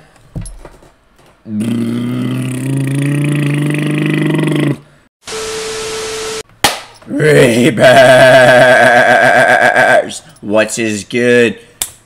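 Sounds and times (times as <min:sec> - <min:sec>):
man making silly vocal noise: 0:01.5 - 0:04.9, 0:07.0 - 0:10.2.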